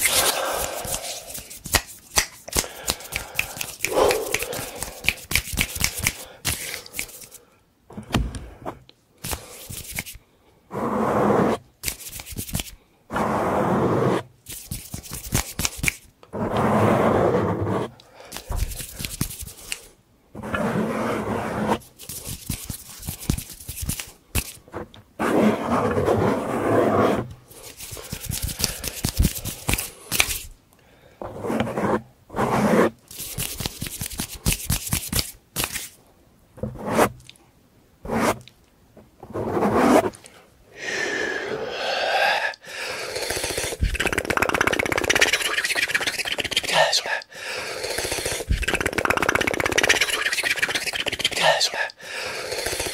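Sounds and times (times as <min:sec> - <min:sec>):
fingers rubbing microphone windscreen: 0:43.2 - 0:46.6, 0:47.9 - 0:51.2.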